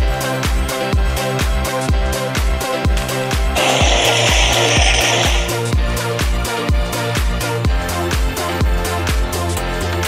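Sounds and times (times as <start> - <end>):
gas jets hissing: 3.6 - 5.6
electronic dance music: 3.6 - 5.7.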